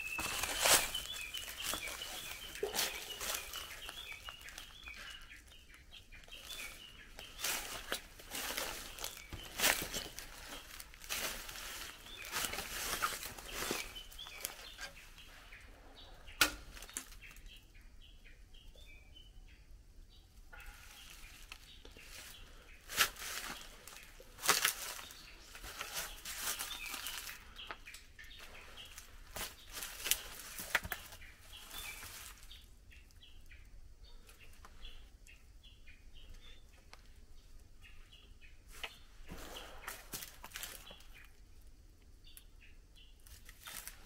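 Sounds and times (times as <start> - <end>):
footsteps crunching on dry leaves: 0.0 - 15.0, 20.7 - 27.6, 28.4 - 32.6, 39.3 - 41.2
bird chirping: 0.0 - 44.0.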